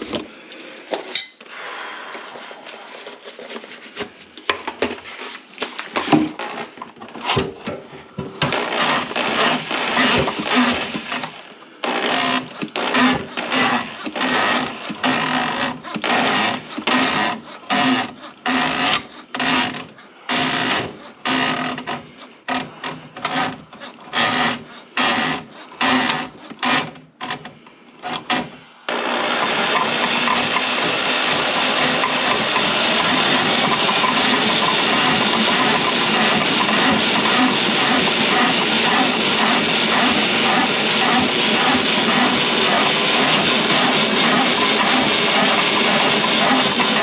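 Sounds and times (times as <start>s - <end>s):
drain-cleaning machine spinning cable: 5.9s - 27.0s, 28.0s - 47.0s.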